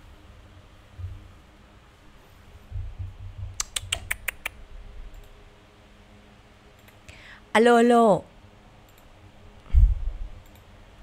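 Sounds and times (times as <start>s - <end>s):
sharp light clicks: 3.6s - 5.4s, 8.9s - 9.1s, 10.4s - 10.7s
dull low bumps: 9.7s - 10.4s.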